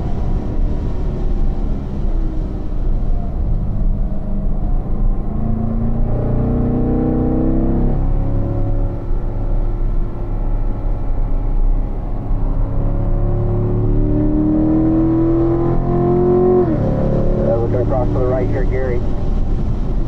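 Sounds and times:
car engine accelerating hard: 0:00.0 - 0:20.0
road and tyre rumble: 0:00.0 - 0:20.0.

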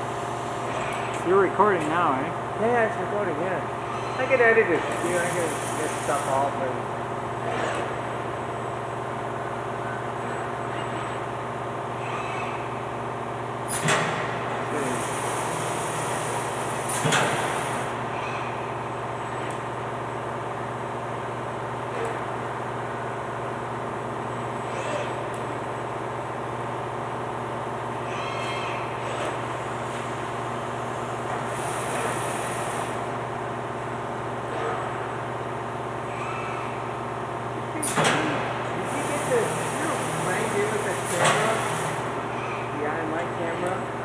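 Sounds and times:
steady machine hum with tones: 0:00.0 - 0:44.0.

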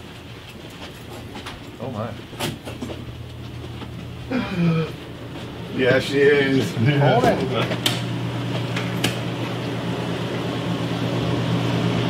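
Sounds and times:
machine humming with low drone: 0:00.0 - 0:12.0.

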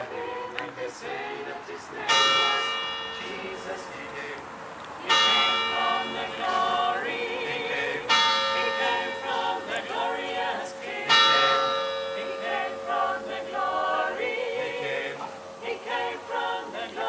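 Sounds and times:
voices singing: 0:00.0 - 0:17.0
bell ringing: 0:02.1 - 0:04.0, 0:05.0 - 0:17.0.

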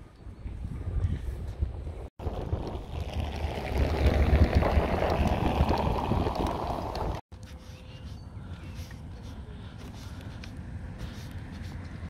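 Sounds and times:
wind buffeting microphone: 0:00.0 - 0:07.2.

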